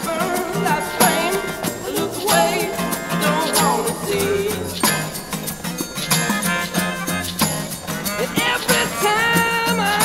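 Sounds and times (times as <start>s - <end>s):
acoustic band playing: 0.0s - 10.0s.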